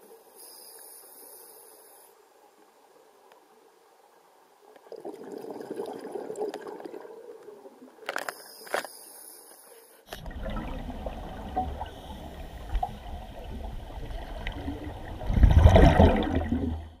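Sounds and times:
low gurgling underwater rumble: 0:10.2 - 0:17.0
regulator bubbles: 0:10.2 - 0:17.0.

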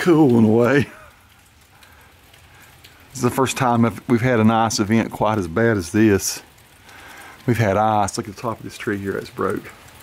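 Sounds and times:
freezing rain pattering on ice: 0:00.0 - 0:10.0.

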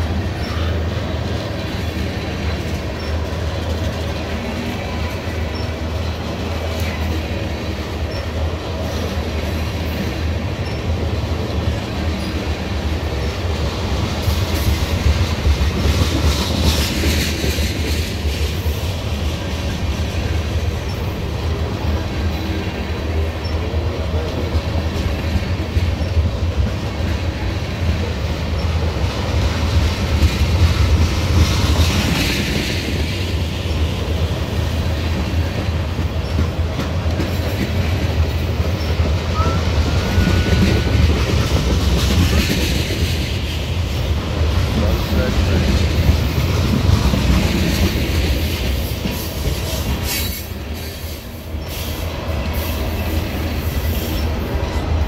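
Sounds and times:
train rumbling past: 0:00.0 - 0:55.0
wheels clickety-clack on rail: 0:00.0 - 0:55.0.

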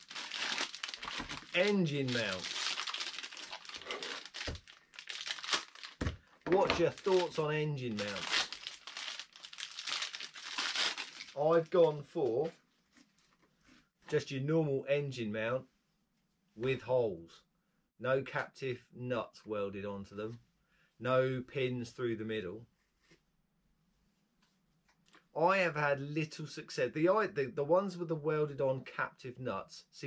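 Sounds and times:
plastic packaging crinkling: 0:00.0 - 0:12.2.

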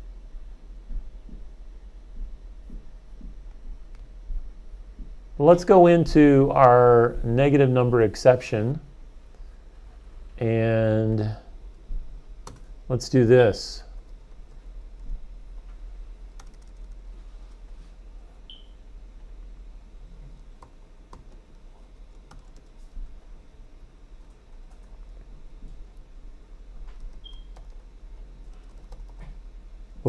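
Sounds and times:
steady low hum: 0:00.0 - 0:30.0
computer keyboard typing: 0:12.4 - 0:12.7, 0:16.3 - 0:17.0, 0:20.6 - 0:21.5, 0:22.1 - 0:22.7, 0:24.3 - 0:25.2, 0:26.9 - 0:27.8, 0:28.4 - 0:29.4.

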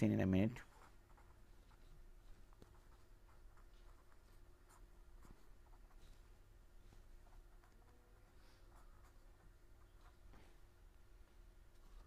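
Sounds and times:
low steady hum: 0:00.0 - 0:12.0
scratching of writing: 0:00.6 - 0:10.8.

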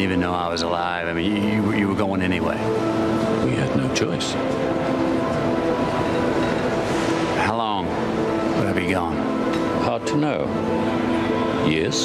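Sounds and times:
sustained film score notes: 0:00.0 - 0:12.0.

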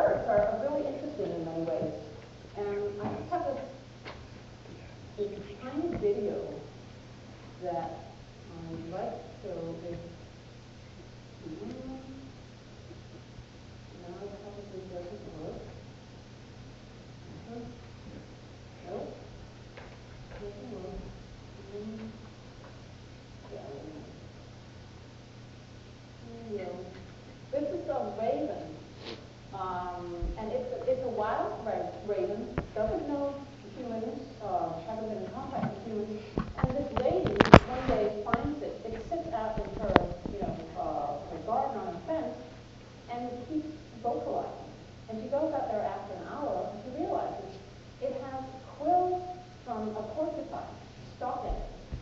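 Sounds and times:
person speaking in a room: 0:00.0 - 0:52.0.

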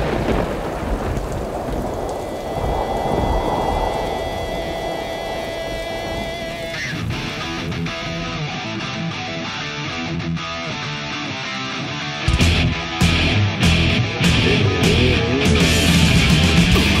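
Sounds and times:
rain pouring: 0:00.0 - 0:08.3
thunder rumbling: 0:00.0 - 0:08.4
rock guitar music: 0:06.0 - 0:17.0.

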